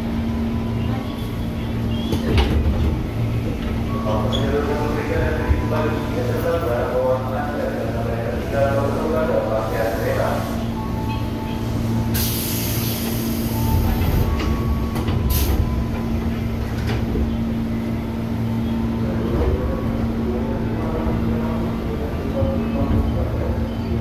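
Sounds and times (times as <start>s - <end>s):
train hum and rumble: 0.0s - 24.0s
air hiss: 12.1s - 13.7s.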